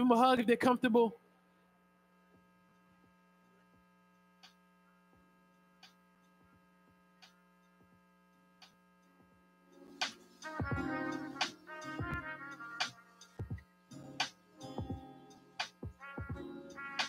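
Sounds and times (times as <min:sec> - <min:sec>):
faint electrical mains hum: 0:00.0 - 0:17.0.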